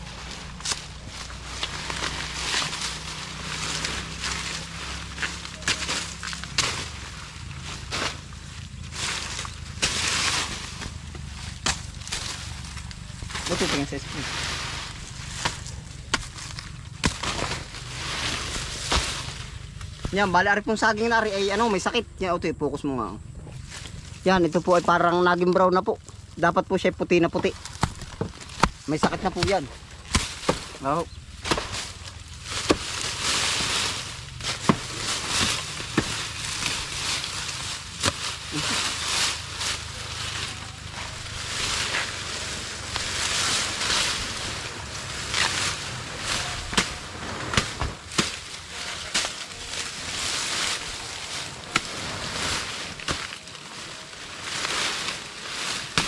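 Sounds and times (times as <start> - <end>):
machete hacking brush: 0.0 - 8.3, 8.9 - 20.4, 27.4 - 56.0
dry leaves rustling and crunching: 0.0 - 56.0
faint low wind rumble: 0.0 - 56.0
machete chopping banana stem: 11.6 - 12.4, 15.4 - 17.7, 38.0 - 38.6, 46.6 - 48.6.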